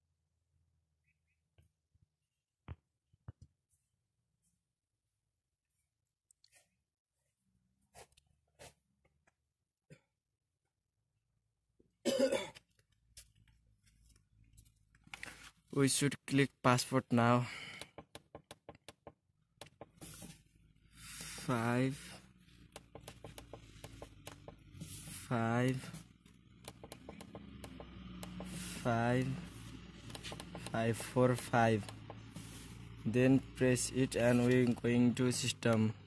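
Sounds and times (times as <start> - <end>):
person coughing: 12.0 - 12.7
man speaking: 21.4 - 22.2, 25.3 - 25.9, 28.8 - 29.5, 30.6 - 31.9, 33.0 - 36.0.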